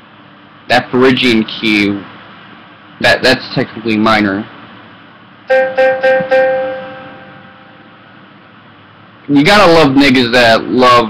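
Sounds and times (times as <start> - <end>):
keyboard note: 5.5 - 8.1.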